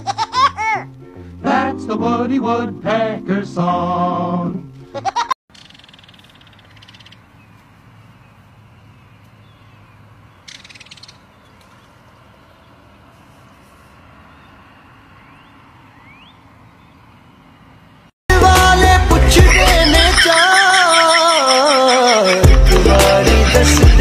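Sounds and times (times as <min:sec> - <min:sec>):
kingfisher rattling call: 0:05.5 - 0:07.2, 0:10.4 - 0:11.3, 0:19.4 - 0:24.0.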